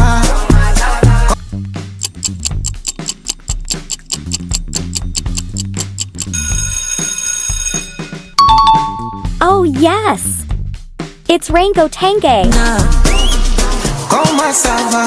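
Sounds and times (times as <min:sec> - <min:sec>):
bass beat: 0:00.0 - 0:06.3, 0:08.4 - 0:14.1
clock ticking: 0:01.9 - 0:06.8
ringing alarm tone: 0:06.2 - 0:09.2
two-note chime: 0:08.4 - 0:09.3.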